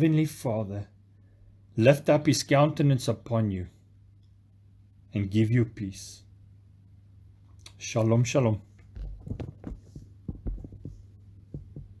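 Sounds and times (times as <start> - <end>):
steady low hum: 0.0 - 12.0
soft low thumps: 9.0 - 12.0.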